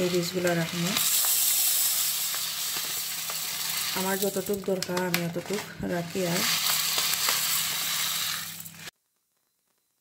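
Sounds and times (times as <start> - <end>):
seeds pouring into metal bowl: 0.0 - 8.9.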